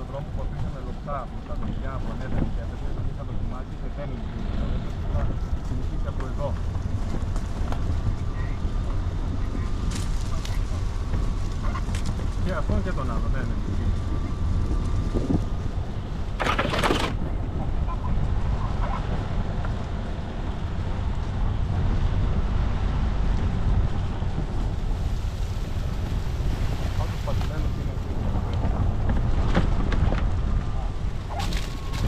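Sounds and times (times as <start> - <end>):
vehicle engine rumble: 0.0 - 32.0
tyres on gravel and leaves: 4.8 - 15.1, 24.5 - 32.0
loud clatter: 16.4 - 17.3.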